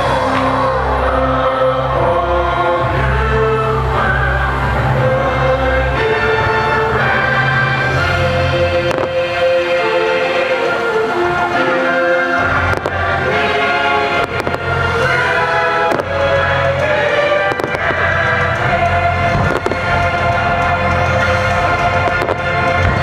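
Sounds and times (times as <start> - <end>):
loud show music: 0.0 - 23.0
fireworks bangs: 12.6 - 18.7, 19.3 - 20.0, 20.6 - 23.0.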